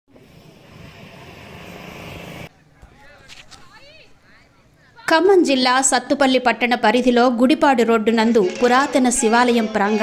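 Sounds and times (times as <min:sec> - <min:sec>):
motor vehicle passing: 0:00.1 - 0:02.5.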